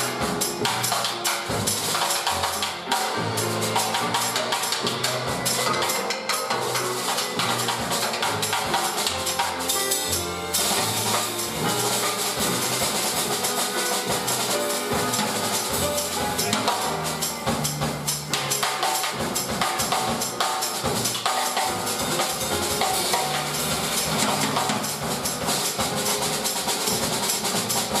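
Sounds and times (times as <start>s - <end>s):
drums and cymbals: 0.0s - 28.0s
piano notes: 0.0s - 28.0s
upright bass: 7.3s - 18.6s, 21.7s - 28.0s
upright bass notes: 14.2s - 18.5s.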